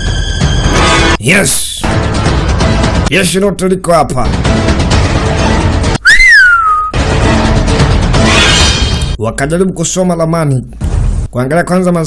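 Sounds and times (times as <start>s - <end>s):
film soundtrack music: 0.0s - 12.0s
whistled note sliding: 6.0s - 7.0s.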